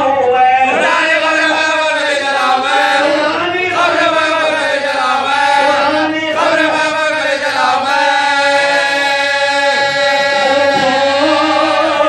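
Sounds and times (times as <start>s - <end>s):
man singing into a microphone: 0.0s - 12.0s
men chanting melodically: 0.0s - 12.0s.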